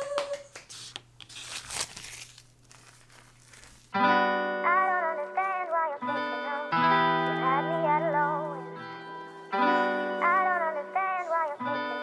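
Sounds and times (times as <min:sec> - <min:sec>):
woman squealing: 0:00.0 - 0:00.5
hand claps: 0:00.0 - 0:01.1
crinkling and rustling: 0:01.2 - 0:04.0.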